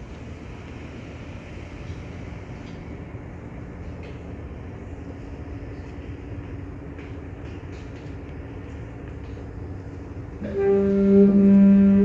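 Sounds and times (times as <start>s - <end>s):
faint constant hum: 0.0s - 12.0s
low room rumble: 0.0s - 12.0s.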